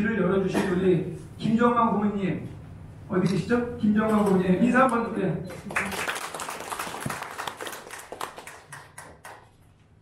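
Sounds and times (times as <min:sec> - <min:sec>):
small audience applauding: 0:05.5 - 0:09.6.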